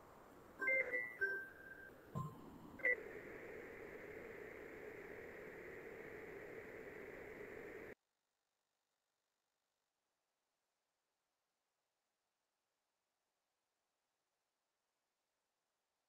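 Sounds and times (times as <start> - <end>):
faint steady hum: 0.0 - 8.0
short electronic beeps: 0.6 - 3.0.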